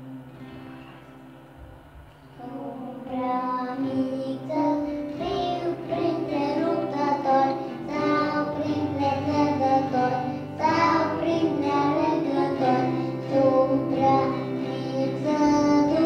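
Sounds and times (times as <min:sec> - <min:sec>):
instrumental accompaniment: 0:00.0 - 0:16.0
choir singing a hymn: 0:02.4 - 0:16.0.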